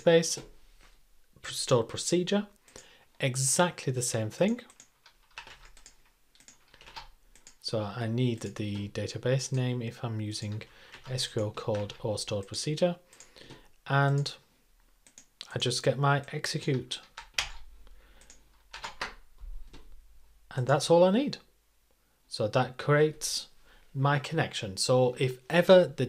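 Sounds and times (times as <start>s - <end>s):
computer keyboard keystrokes: 4.6s - 7.6s, 10.4s - 12.0s, 17.0s - 19.8s
keyboard key presses: 18.2s - 19.8s.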